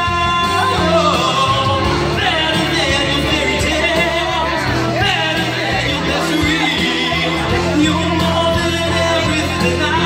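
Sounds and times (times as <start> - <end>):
man singing into a microphone: 0.0 - 10.0
pop backing track over speakers: 0.0 - 10.0.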